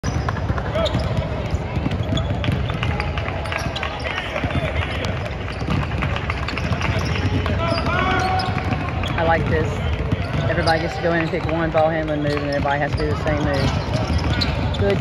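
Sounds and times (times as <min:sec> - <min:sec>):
basketballs dribbling on hardwood: 0:00.0 - 0:15.0.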